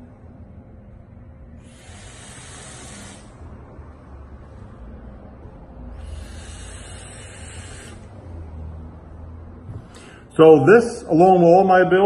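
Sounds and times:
low steady rumble: 0:00.0 - 0:12.0
airy hiss of vape: 0:01.6 - 0:03.4, 0:06.0 - 0:08.1.

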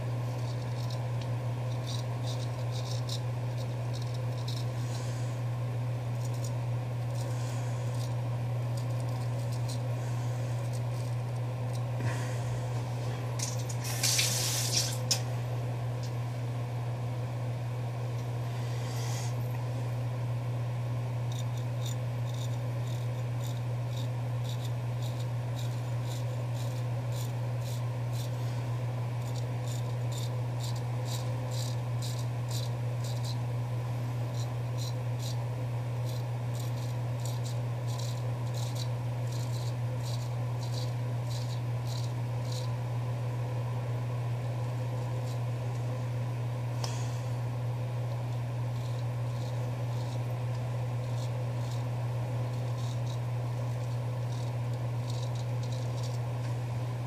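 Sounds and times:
steady low hum: 0:00.0 - 0:57.0
straight razor scraping stubble: 0:00.2 - 0:05.3, 0:06.1 - 0:12.3, 0:12.9 - 0:15.3, 0:21.2 - 0:33.5, 0:34.3 - 0:35.4, 0:36.0 - 0:42.8, 0:48.0 - 0:56.6.

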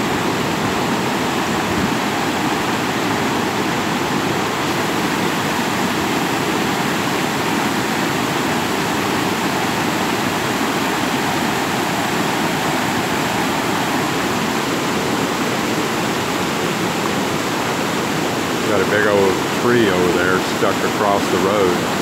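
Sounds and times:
flood water rushing: 0:00.0 - 0:22.0.

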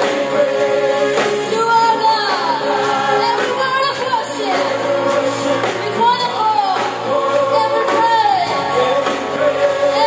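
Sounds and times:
praise team singing: 0:00.0 - 0:10.0.

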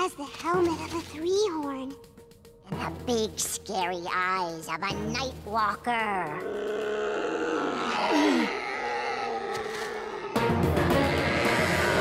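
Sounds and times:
background music: 0:00.0 - 0:12.0
cartoon dinosaur groan: 0:06.4 - 0:12.0.

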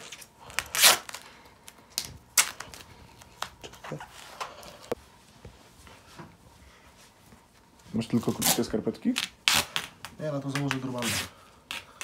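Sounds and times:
tape crackling and clicking: 0:00.0 - 0:05.0, 0:08.5 - 0:11.0.

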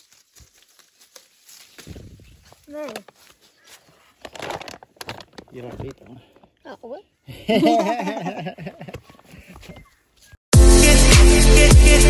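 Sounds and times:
leaves and twigs rustling: 0:00.0 - 0:06.4.

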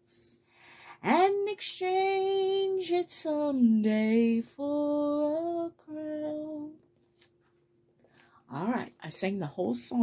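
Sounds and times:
woman singing a hymn: 0:00.1 - 0:06.8.

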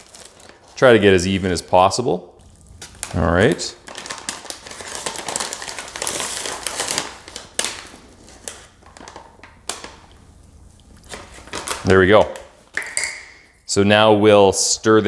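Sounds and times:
plastic pouch crinkling: 0:00.0 - 0:13.0.

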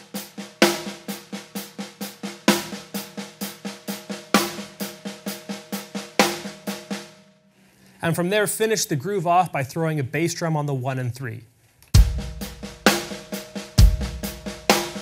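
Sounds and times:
snare drum strokes: 0:00.0 - 0:07.2, 0:12.0 - 0:15.0.

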